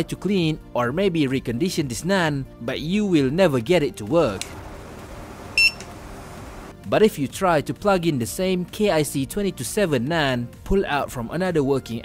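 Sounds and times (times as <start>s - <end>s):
quiet background music: 0.0s - 12.0s
short electronic beep: 5.6s - 5.9s.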